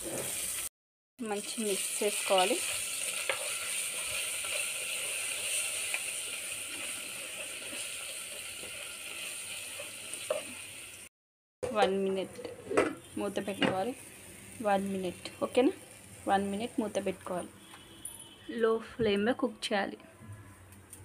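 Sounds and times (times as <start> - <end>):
food sizzling in hot oil: 0.0 - 11.1, 13.0 - 17.6
spatula stirring: 2.5 - 6.1.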